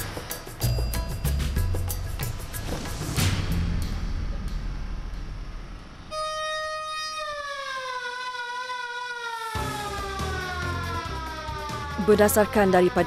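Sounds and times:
background music: 0:00.0 - 0:05.4, 0:07.8 - 0:13.0
siren winding down: 0:04.5 - 0:13.0.

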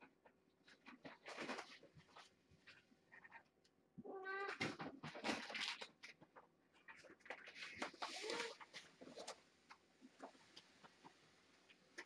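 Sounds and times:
cat meowing: 0:04.0 - 0:04.6.

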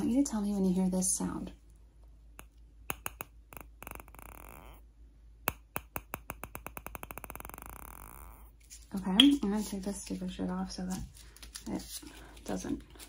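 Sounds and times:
sharp taps: 0:02.4 - 0:03.6.

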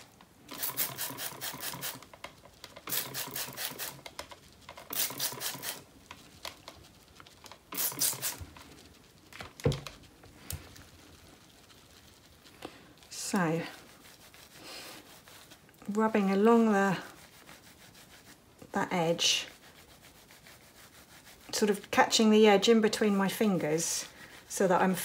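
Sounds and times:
spray bottle squirting: 0:00.4 - 0:02.1, 0:02.8 - 0:04.1, 0:04.8 - 0:05.9, 0:07.7 - 0:08.5.

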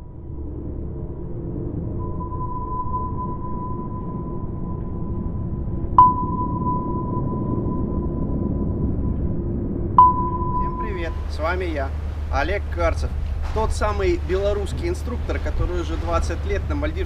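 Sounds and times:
low underwater rumble: 0:00.0 - 0:16.9
steady high tone: 0:00.2 - 0:09.1, 0:10.0 - 0:12.0
sharp sonar ping: 0:02.0 - 0:11.4.

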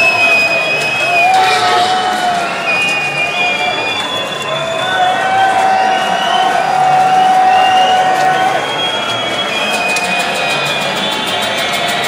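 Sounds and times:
crowd noise: 0:00.0 - 0:12.0
long held synth tone: 0:01.0 - 0:03.8
electronic dance music: 0:01.1 - 0:03.1.

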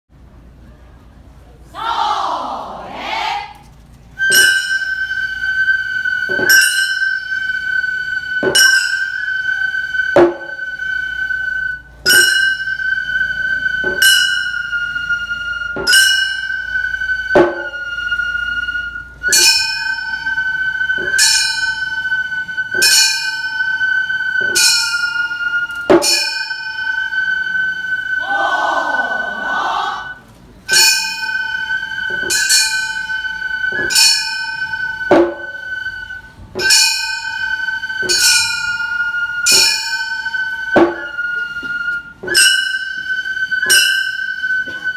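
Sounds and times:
hand gongs clanging: 0:04.2 - 0:05.6, 0:06.2 - 0:10.9, 0:11.9 - 0:18.2, 0:19.2 - 0:28.3, 0:30.6 - 0:44.9
steady high held note: 0:04.2 - 0:44.9.

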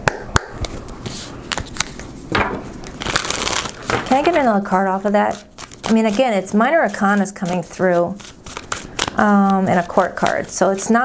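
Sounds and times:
cards being shuffled: 0:00.6 - 0:10.8.

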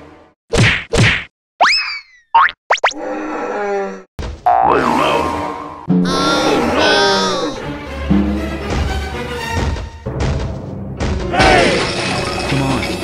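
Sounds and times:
rising boing glide: 0:04.5 - 0:06.7.

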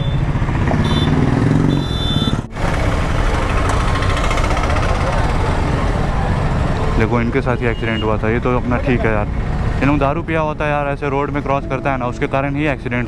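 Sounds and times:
motorcycle engine running: 0:00.0 - 0:06.8
road noise: 0:00.0 - 0:13.0.

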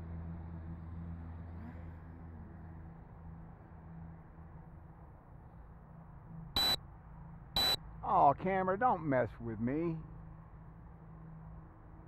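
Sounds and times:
short high camera beeps: 0:06.6 - 0:06.8, 0:07.6 - 0:07.8.

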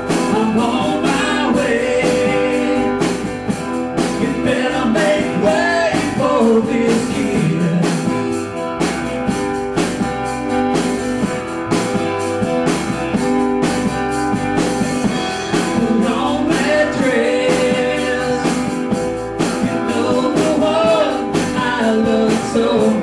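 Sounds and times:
drum kit steady beat: 0:00.0 - 0:23.0
electric guitar: 0:00.0 - 0:23.0
strummed acoustic guitars: 0:00.0 - 0:23.0.

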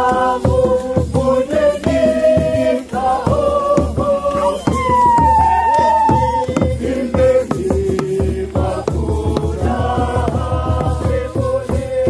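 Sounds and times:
large hand drum beats: 0:00.0 - 0:12.0
processional song: 0:00.0 - 0:12.0.

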